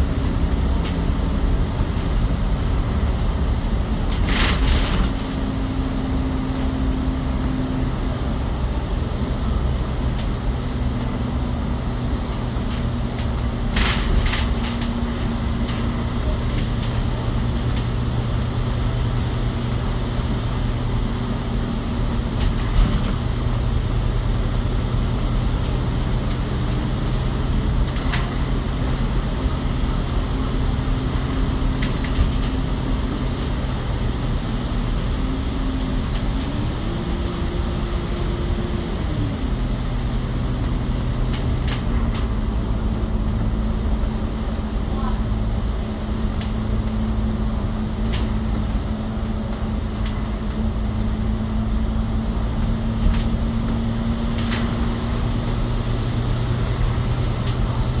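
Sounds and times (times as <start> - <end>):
bus engine and road drone: 0.0 - 58.0.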